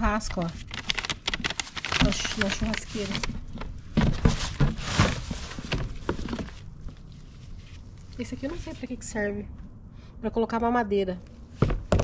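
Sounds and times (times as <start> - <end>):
plastic bag rustling: 0.1 - 9.0
plastic objects knocking on table: 11.6 - 12.0.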